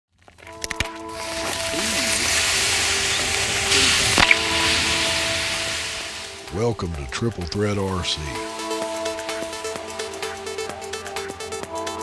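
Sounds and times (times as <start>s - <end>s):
sharp crack: 0.4s - 7.6s
faint music: 0.4s - 10.9s
battery venting gas hiss: 0.9s - 6.6s.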